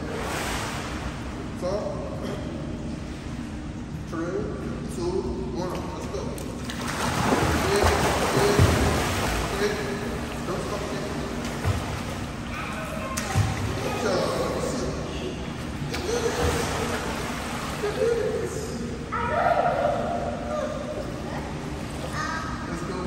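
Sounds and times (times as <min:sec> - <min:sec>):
water noise: 0:00.0 - 0:23.0
voices calling out echoing: 0:12.2 - 0:23.0.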